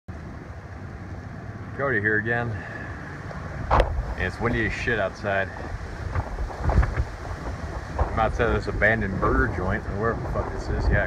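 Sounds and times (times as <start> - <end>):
wind rumbling on microphone: 0.1 - 11.0
man talking: 1.7 - 3.0, 4.1 - 5.8, 8.0 - 11.0.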